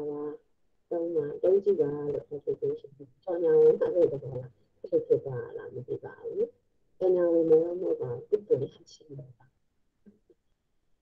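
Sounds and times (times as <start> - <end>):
person speaking over video call: 0.0 - 9.4.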